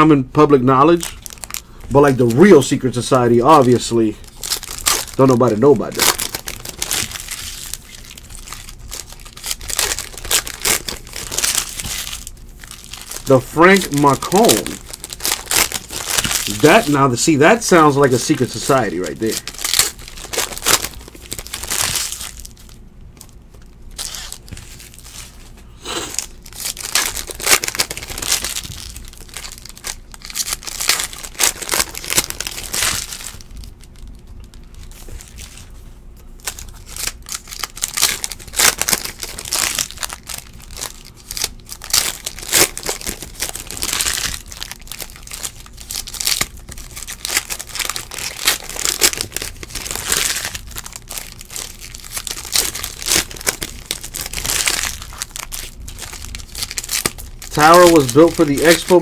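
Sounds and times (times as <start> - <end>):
foil wrappers crinkling and tearing: 0.0 - 59.0.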